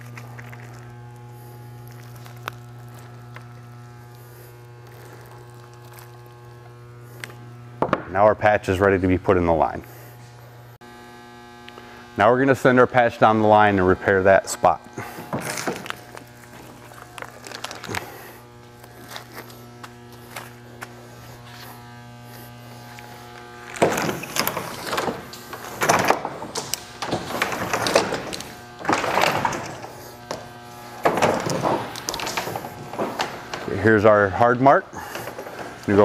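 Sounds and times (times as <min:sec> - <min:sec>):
packer scraping inside pipe: 0:00.0 - 0:07.4, 0:14.9 - 0:36.0
steady hum: 0:00.0 - 0:36.0.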